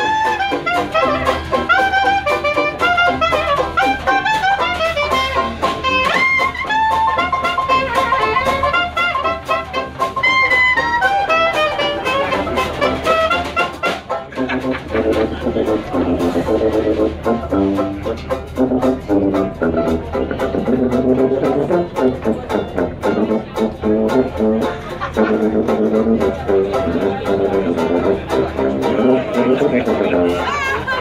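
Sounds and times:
clarinet melody: 0.0 - 31.0
dixieland jazz band playing: 0.0 - 31.0.

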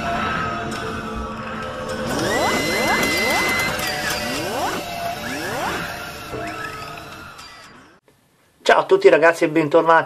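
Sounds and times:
rising synth sweeps: 1.8 - 6.8
steady high tone: 1.8 - 6.8.

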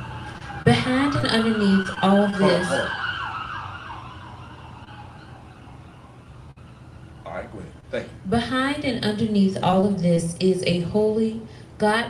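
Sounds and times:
emergency vehicle siren wailing: 0.0 - 7.8.

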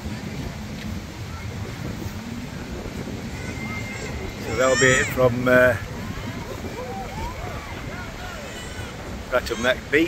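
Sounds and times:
faint voices of people: 0.0 - 10.0.

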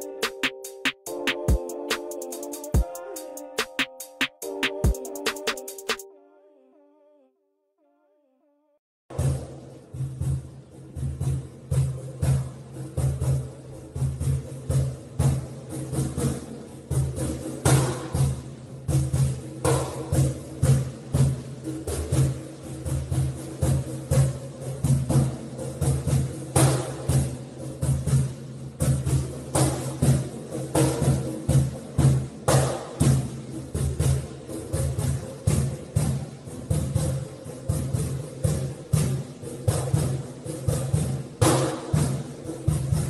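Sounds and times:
percussion music with drums: 0.0 - 6.1, 9.1 - 43.0.

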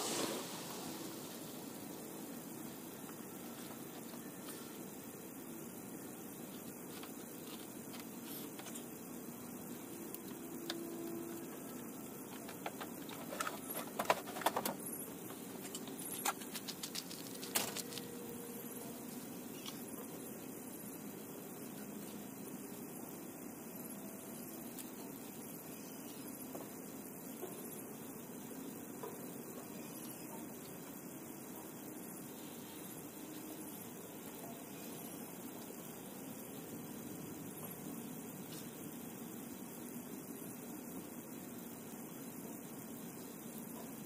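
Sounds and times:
low hum: 0.0 - 4.5
even hiss: 0.0 - 44.0.

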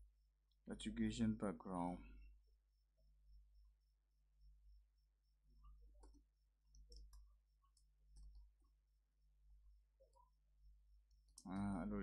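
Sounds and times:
man speaking: 0.7 - 2.0, 11.5 - 12.0.

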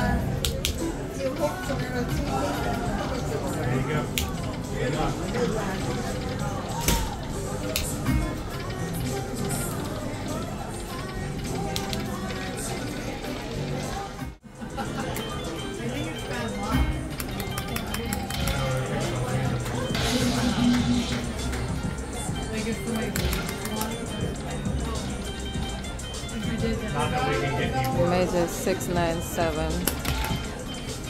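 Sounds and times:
casino chatter: 0.0 - 31.0
slot machine reel-spin music: 0.8 - 31.0.

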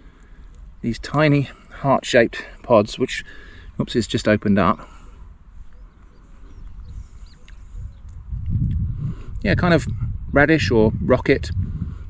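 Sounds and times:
wind rumbling on microphone: 5.2 - 12.0.

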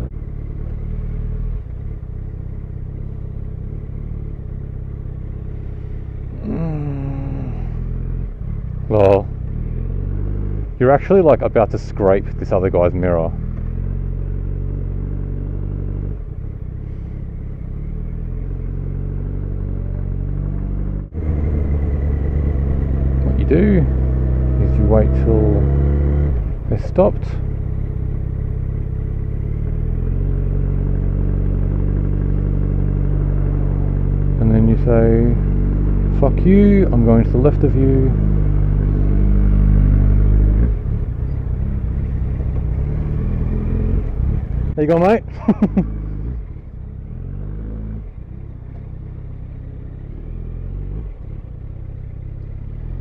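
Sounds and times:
motorcycle engine running: 0.0 - 53.0.

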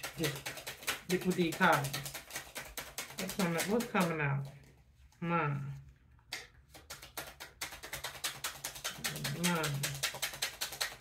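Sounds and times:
cards being shuffled: 0.0 - 5.2, 6.2 - 11.0.

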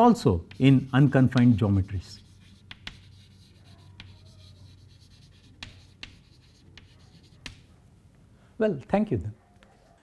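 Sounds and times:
chalk scratching on chalkboard: 0.3 - 7.7
chalk ticking on board: 0.3 - 7.7.

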